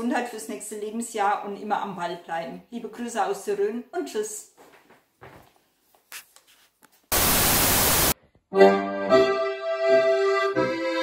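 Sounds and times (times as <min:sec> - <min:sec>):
loud static hiss: 0:07.1 - 0:08.2.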